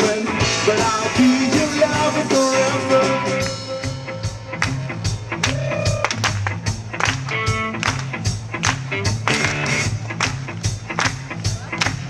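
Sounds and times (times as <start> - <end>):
bass guitar: 0.0 - 12.0
drum kit beat: 0.0 - 12.0
electric guitars: 0.0 - 12.0.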